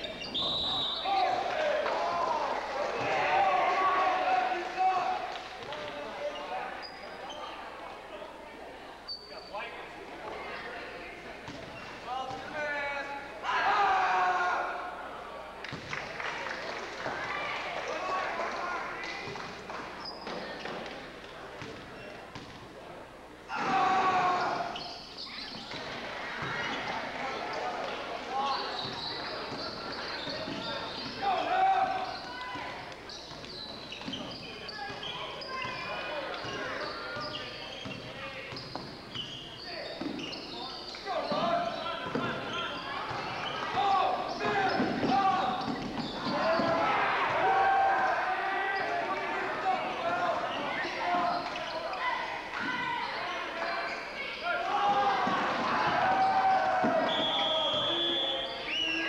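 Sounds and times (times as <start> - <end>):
players and spectators voices: 0.0 - 59.0.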